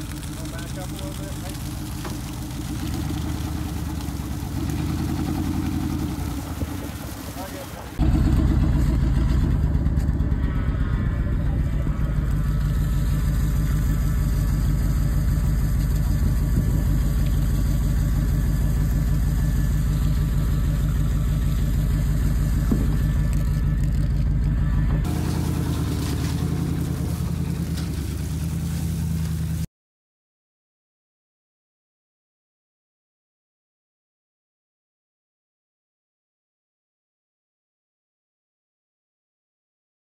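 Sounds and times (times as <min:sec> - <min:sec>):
water gushing and splashing: 0:00.0 - 0:08.0, 0:25.1 - 0:29.6
engine running steadily: 0:00.0 - 0:29.7.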